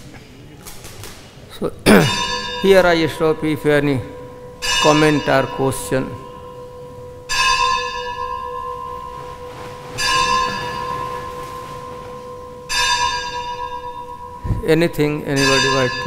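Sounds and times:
bell ringing: 2.1s - 16.0s.

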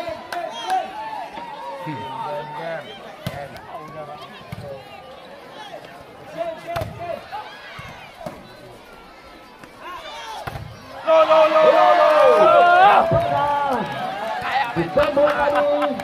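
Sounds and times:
crowd chatter and shouting: 0.0s - 16.0s.

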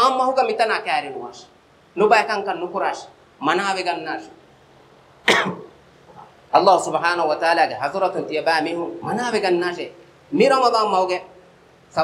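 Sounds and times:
man coughing: 5.2s - 6.3s.

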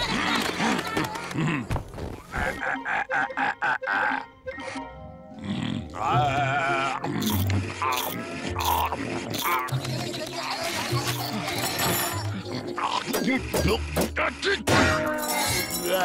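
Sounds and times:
bouncy cartoon background music: 0.0s - 16.0s
cartoon bear grunts and laughs: 2.3s - 11.0s.

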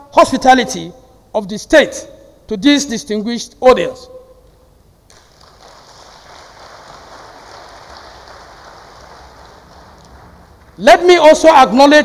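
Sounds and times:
audience applauding: 5.1s - 10.9s.

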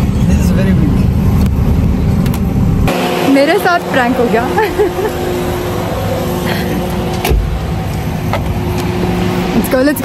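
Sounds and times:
car engine idling: 0.0s - 10.0s
person laughing: 4.4s - 5.4s.

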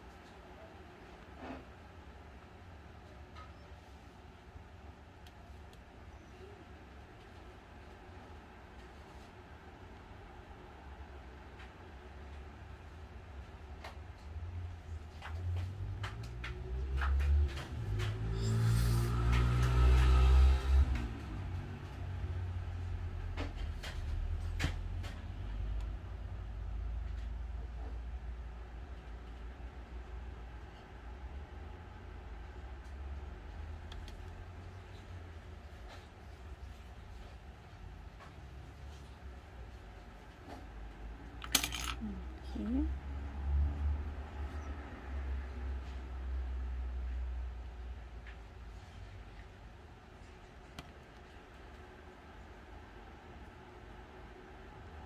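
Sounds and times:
plastic clattering on table: 41.4s - 42.0s.

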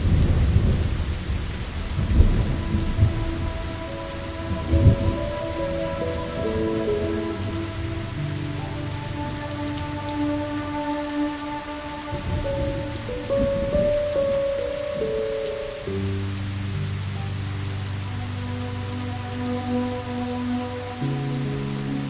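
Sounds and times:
thunder rumbles: 0.0s - 16.0s
soft sustained music notes: 0.0s - 22.0s
steady rain falling: 0.0s - 22.0s.

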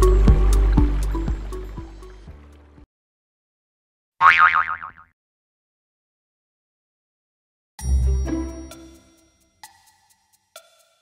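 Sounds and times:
cartoon boing sound effect: 4.2s - 5.1s.

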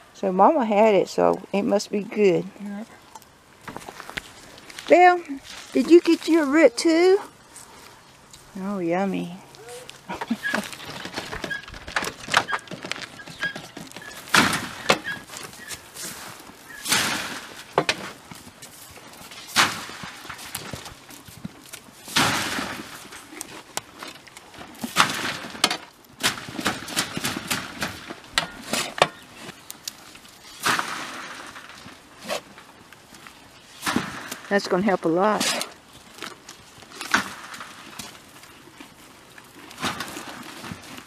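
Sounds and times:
shovel scraping steel wheelbarrow: 9.6s - 20.9s, 22.0s - 29.6s, 30.4s - 32.7s, 33.6s - 36.4s, 39.7s - 41.0s.

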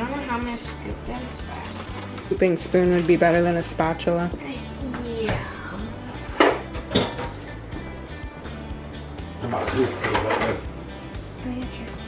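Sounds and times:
background music: 0.0s - 12.0s
utensils clinking on dishes: 0.1s - 3.5s, 6.2s - 7.5s, 9.4s - 10.7s.

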